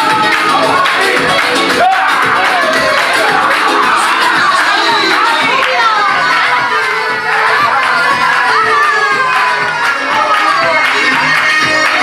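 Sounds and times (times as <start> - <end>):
crowd shouting and cheering: 0.0 - 12.0
loud dance music: 0.0 - 12.0.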